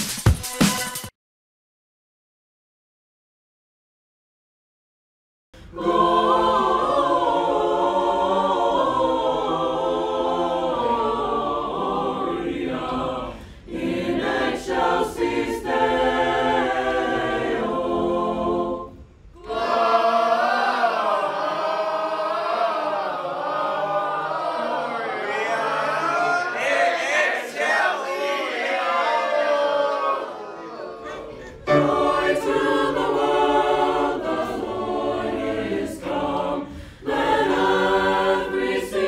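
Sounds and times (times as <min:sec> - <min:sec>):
choir singing in harmony: 0:05.6 - 0:39.0.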